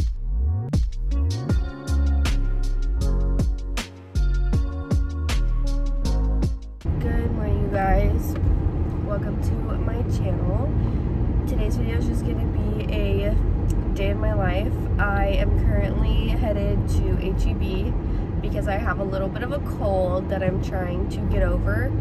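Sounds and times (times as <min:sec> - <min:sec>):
road and engine noise in car: 0:06.8 - 0:22.0
woman talking: 0:06.9 - 0:08.4, 0:09.0 - 0:10.8, 0:11.5 - 0:22.0.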